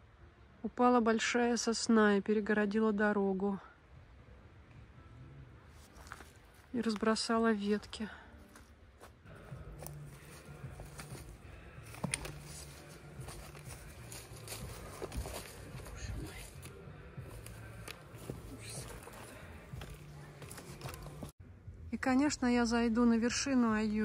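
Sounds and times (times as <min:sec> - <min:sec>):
footsteps in dry leaves: 0:05.8 - 0:07.0, 0:08.5 - 0:21.3
twigs crackling: 0:05.8 - 0:07.3, 0:09.8 - 0:21.3
trekking poles clicking: 0:10.8 - 0:16.8.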